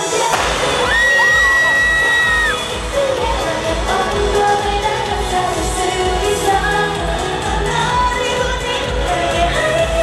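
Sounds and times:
crowd screaming and cheering: 0.0s - 7.9s
dance pop song over sound system: 0.0s - 10.0s.

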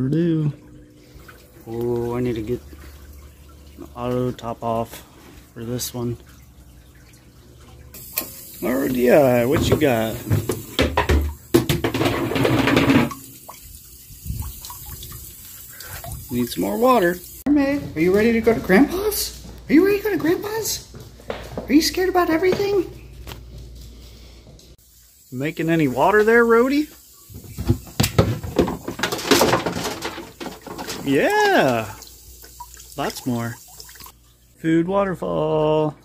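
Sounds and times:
thin stream of water running: 0.0s - 20.8s, 24.7s - 36.0s.

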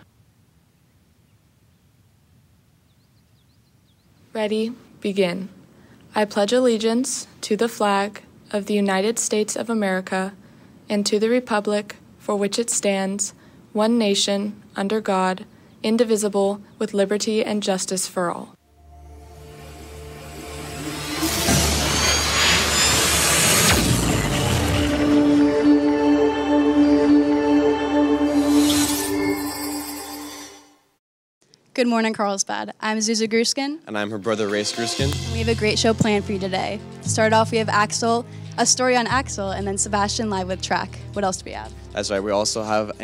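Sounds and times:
faint background hiss: 0.0s - 18.9s
deep bass rumble: 18.8s - 27.6s, 35.0s - 43.0s
whooshing sweep: 18.8s - 29.5s.

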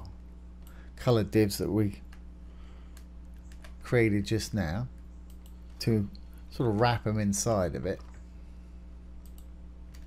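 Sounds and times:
low electrical hum: 0.0s - 10.0s
computer keyboard clicks: 3.0s - 3.8s.

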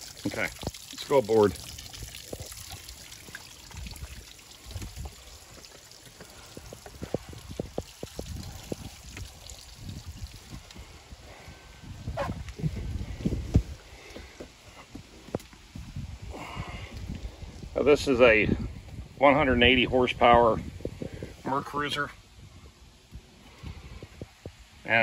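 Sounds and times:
water trickling and splashing: 0.0s - 25.0s
footsteps on wooden platform: 13.4s - 15.9s.

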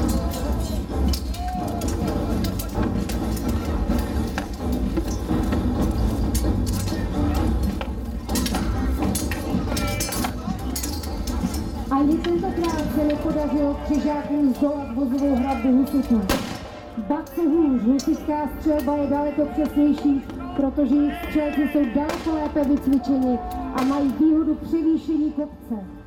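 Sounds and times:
voices shouting: 0.0s - 2.8s, 6.9s - 24.2s
swords and armour clattering: 6.1s - 13.6s.

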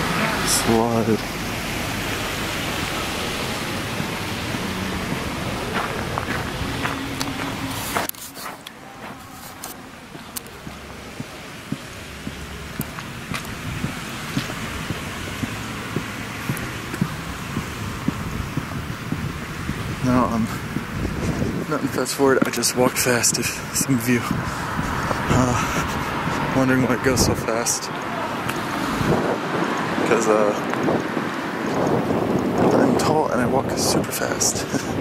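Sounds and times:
street rushing noise: 0.0s - 35.0s.

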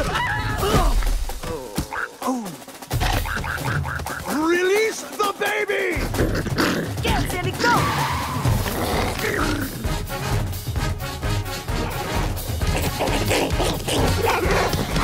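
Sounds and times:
people yelling and grunting: 0.0s - 2.8s, 4.2s - 9.9s, 11.7s - 15.0s
action film music: 0.0s - 15.0s.

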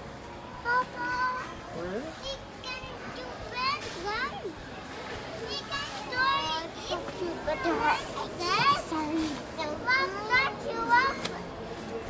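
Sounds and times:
young children chattering: 0.5s - 12.0s.

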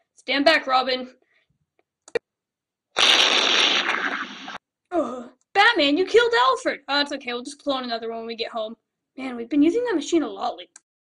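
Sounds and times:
explosion: 3.0s - 4.6s.

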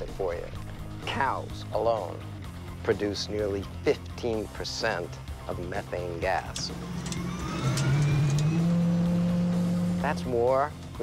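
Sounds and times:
helicopter rotor whine starting up: 6.5s - 10.2s.

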